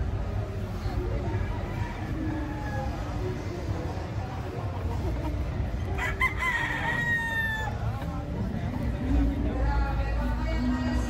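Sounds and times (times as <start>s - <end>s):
rooster crowing: 6.0s - 7.8s.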